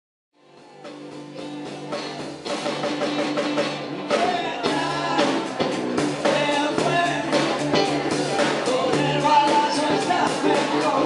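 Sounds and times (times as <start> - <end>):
live rock trio playing: 0.4 - 11.0.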